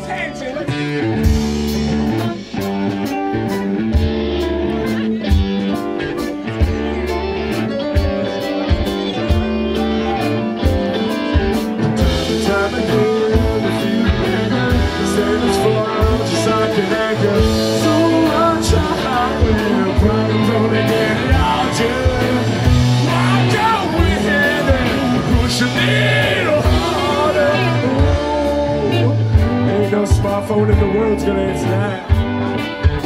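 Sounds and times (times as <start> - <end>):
live rock band playing: 0.0 - 33.0
steady drum beat: 0.0 - 33.0.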